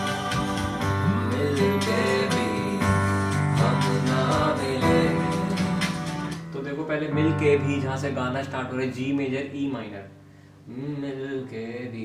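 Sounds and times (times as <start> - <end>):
digital piano playing chords: 0.0 - 10.3.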